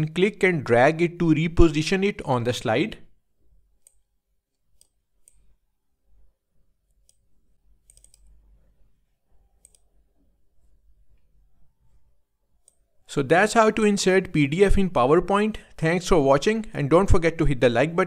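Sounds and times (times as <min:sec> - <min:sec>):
computer mouse clicks: 0:03.8 - 0:05.5, 0:06.9 - 0:08.4, 0:09.6 - 0:10.0, 0:12.6 - 0:12.9.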